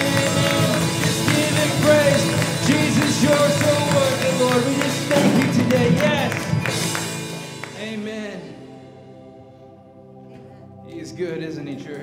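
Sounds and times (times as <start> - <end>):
worship band playing: 0.0 - 12.0.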